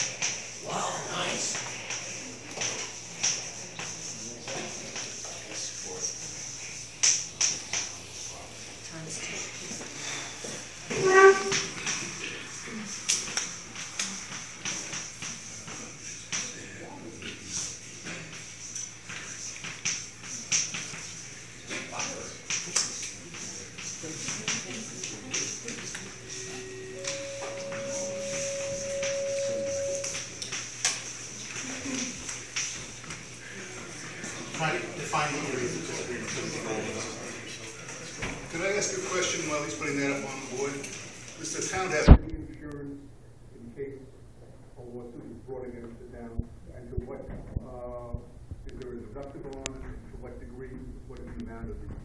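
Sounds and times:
high-pitched room hiss: 25.5s - 31.4s
steady single-pitched tone: 26.4s - 30.4s.

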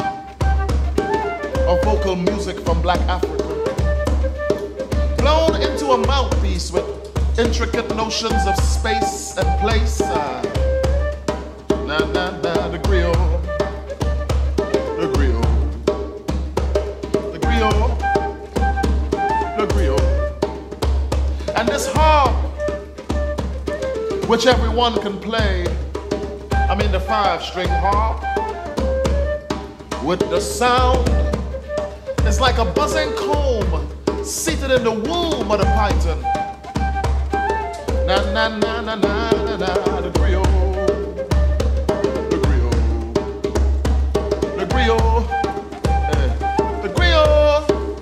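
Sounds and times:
held melody notes: 0.0s - 2.2s
flute melody: 0.0s - 6.7s, 7.5s - 16.0s, 17.3s - 20.8s, 21.5s - 25.7s, 26.5s - 33.9s, 34.6s - 43.5s, 44.3s - 48.0s
afro-funk band playing live: 0.0s - 48.0s
djembe slaps and bass tones: 0.0s - 48.0s
hand drums and percussion: 0.0s - 48.0s.

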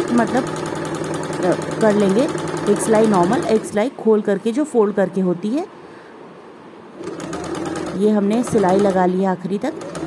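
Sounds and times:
sewing machine stitching: 0.0s - 3.8s, 7.0s - 10.0s.

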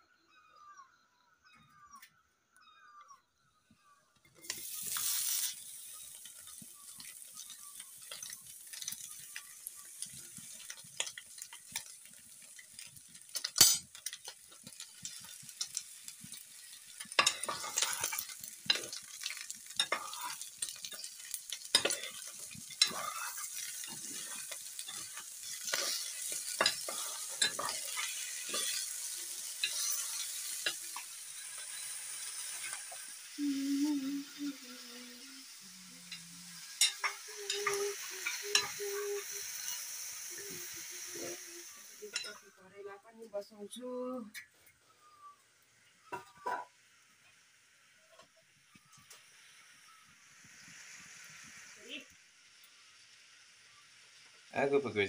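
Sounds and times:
vegetables sizzling in a pan: 3.8s - 55.0s
metal spatula scraping a pan: 4.4s - 9.1s, 10.4s - 33.0s, 36.8s - 39.0s.

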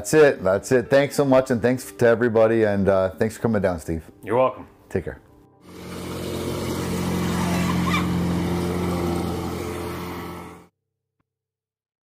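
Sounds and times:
motorboat engine running: 5.6s - 10.7s.

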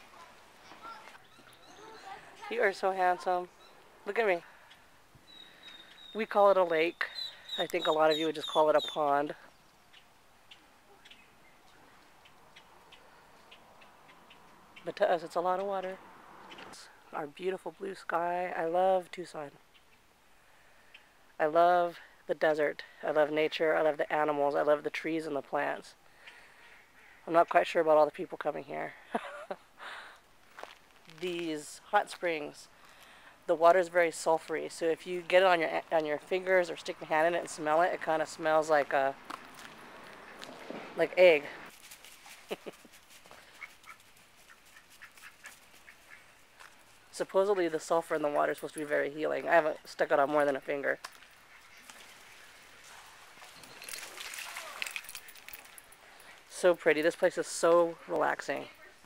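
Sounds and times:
low outdoor background noise: 0.0s - 59.0s
footsteps on paved path: 30.4s - 31.4s, 38.8s - 47.0s.

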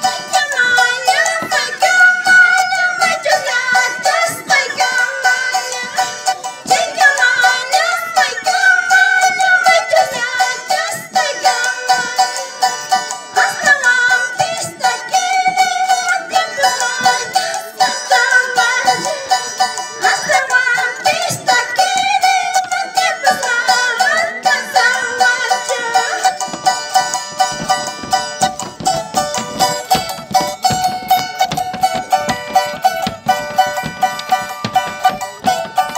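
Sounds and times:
charango strumming: 0.0s - 35.9s
woman singing folk song: 0.0s - 35.9s.

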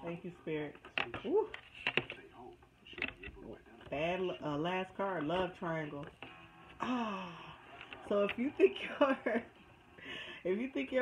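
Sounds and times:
paper cards rustling: 0.8s - 4.2s.

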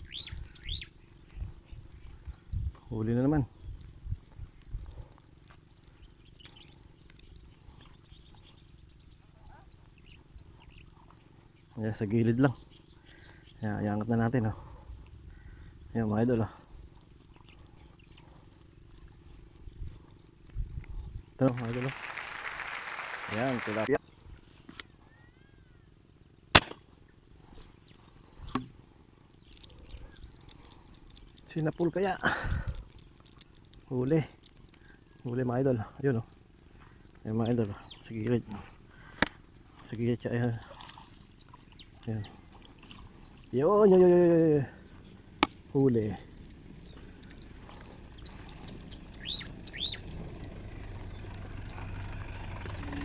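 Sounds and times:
steady low hum: 0.0s - 53.0s
faint high chirps: 25.0s - 26.0s.

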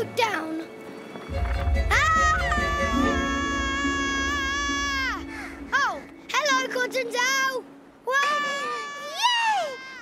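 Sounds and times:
background music: 0.0s - 9.8s
cartoon character screaming: 2.0s - 5.2s.

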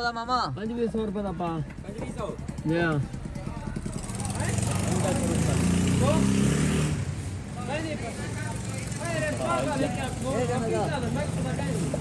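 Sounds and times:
vehicle engine running: 0.9s - 6.4s, 7.2s - 12.0s.

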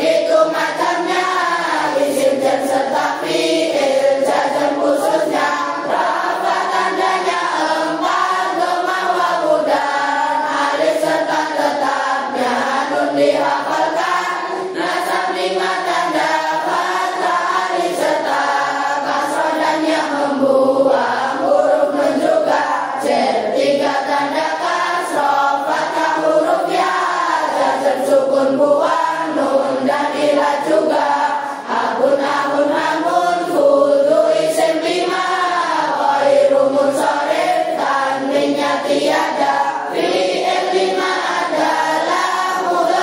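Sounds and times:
children singing together: 0.0s - 43.0s.

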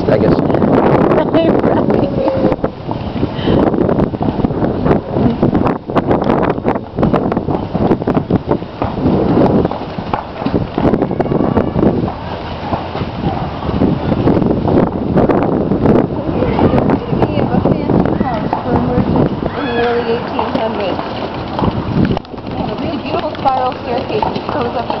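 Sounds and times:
carriage wheels rumbling and rattling: 0.0s - 25.0s
horse hooves clopping: 0.0s - 25.0s
wind buffeting microphone: 0.0s - 25.0s.

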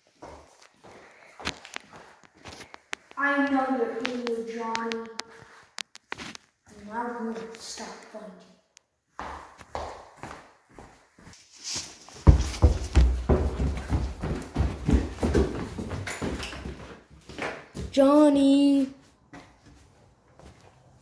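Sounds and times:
footsteps on tiled floor: 0.0s - 7.8s, 9.1s - 21.0s.

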